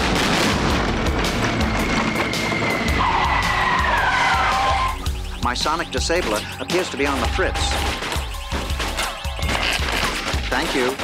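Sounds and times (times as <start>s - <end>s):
background music with steady beat: 0.0s - 11.0s
car tyres squealing: 1.2s - 5.2s
voices: 3.7s - 9.7s.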